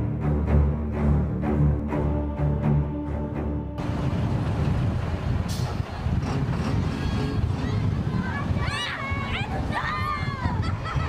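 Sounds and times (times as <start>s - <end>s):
vehicle engine rumble: 3.8s - 11.0s.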